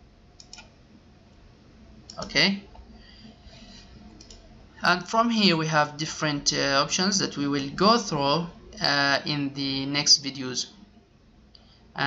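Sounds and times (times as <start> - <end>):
low steady hiss: 0.0 - 12.0
computer mouse clicks: 0.4 - 0.8, 2.0 - 2.9, 3.5 - 4.5
man speaking: 2.2 - 2.7, 4.8 - 10.8.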